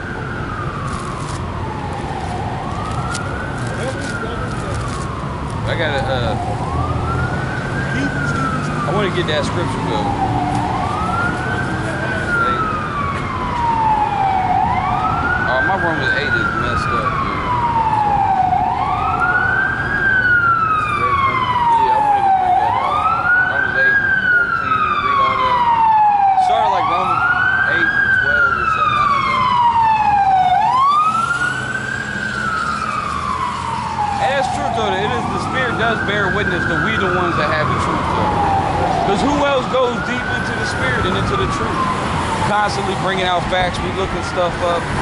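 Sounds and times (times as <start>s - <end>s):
fire engine siren wailing: 0.0s - 45.0s
street traffic: 0.0s - 45.0s.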